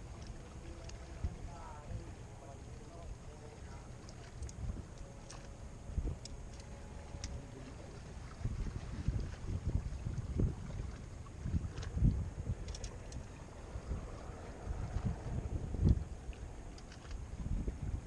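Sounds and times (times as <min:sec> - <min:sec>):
wind buffeting the microphone: 0:00.0 - 0:18.0.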